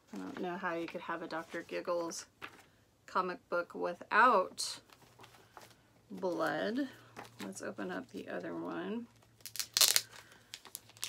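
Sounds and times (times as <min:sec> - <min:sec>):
packaging crinkling and tearing: 0:09.2 - 0:11.0.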